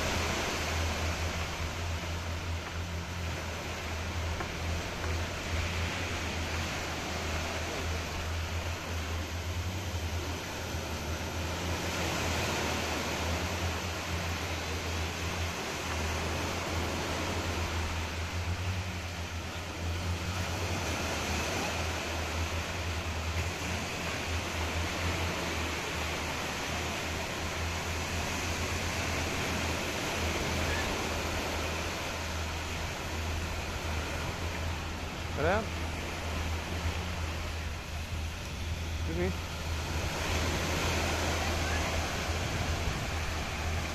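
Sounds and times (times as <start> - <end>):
low hum: 0.0 - 43.9
small waves washing on sand: 0.0 - 43.9.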